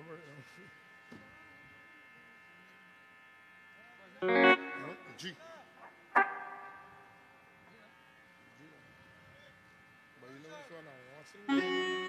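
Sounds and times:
electric hum and buzz from amplifiers: 0.0s - 12.0s
electric guitar chord: 4.2s - 5.2s, 6.2s - 7.1s, 11.5s - 12.0s.

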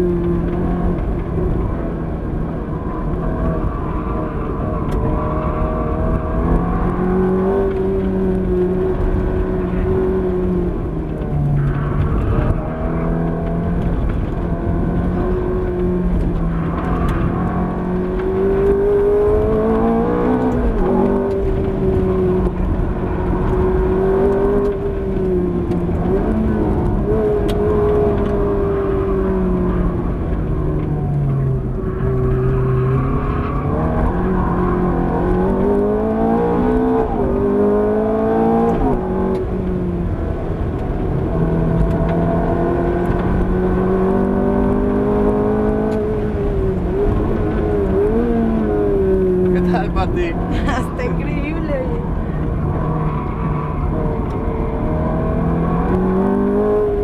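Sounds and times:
car engine revving through gears: 0.0s - 57.0s.

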